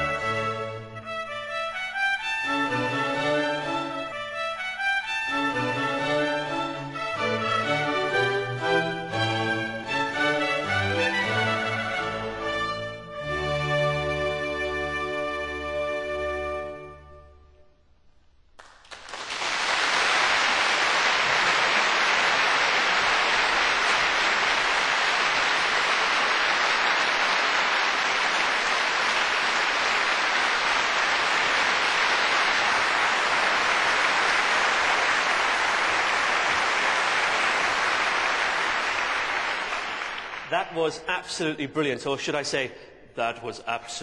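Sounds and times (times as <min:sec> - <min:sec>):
large audience applauding: 0:18.6 - 0:40.8.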